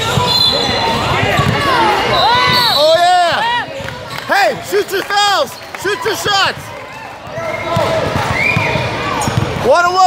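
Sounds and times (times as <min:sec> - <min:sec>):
people shouting and chattering: 0:00.0 - 0:10.0.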